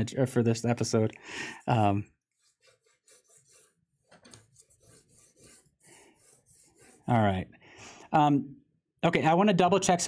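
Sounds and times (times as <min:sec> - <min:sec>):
pencil scratching on paper: 0:01.6 - 0:07.4.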